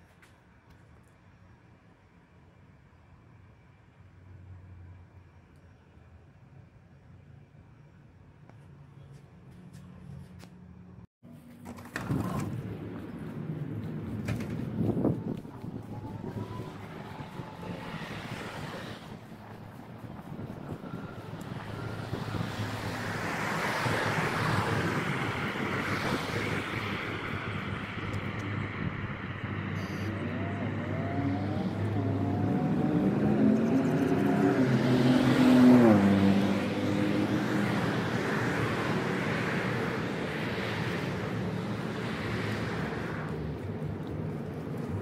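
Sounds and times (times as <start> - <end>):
traffic noise: 0.0 - 45.0
vehicle passing by: 12.1 - 45.0.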